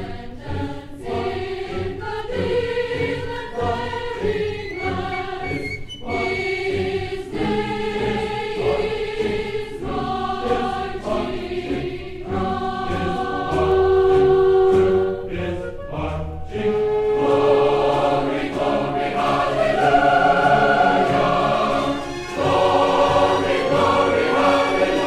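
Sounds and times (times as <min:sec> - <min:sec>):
choir singing held chords: 0:00.0 - 0:25.0.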